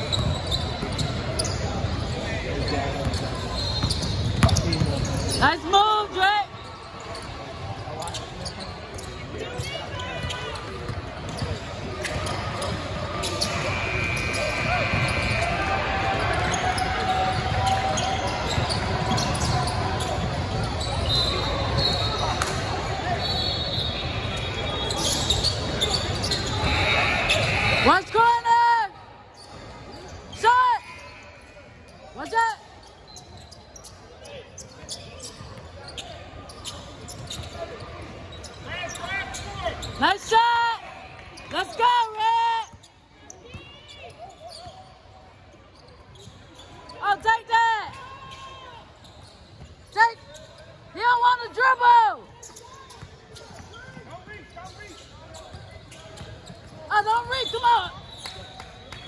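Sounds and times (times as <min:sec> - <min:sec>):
sneakers squeaking: 0:00.0 - 0:28.6, 0:29.3 - 0:59.0
crowd and court noise: 0:00.0 - 0:59.0
basketball bouncing: 0:03.8 - 0:04.9.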